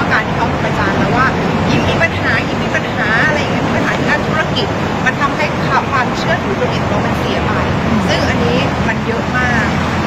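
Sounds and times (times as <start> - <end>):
woman speaking: 0.0 - 9.8
traffic noise: 0.0 - 10.0.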